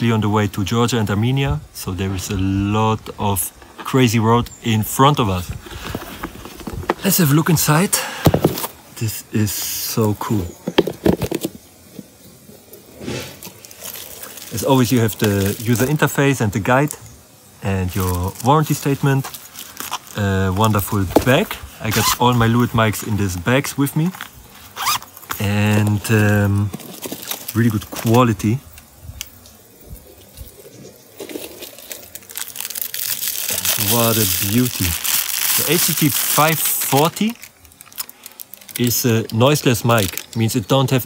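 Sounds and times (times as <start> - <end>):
faint handling: 2.0 - 40.5
plastic packaging crinkling: 3.6 - 9.0, 9.8 - 41.0.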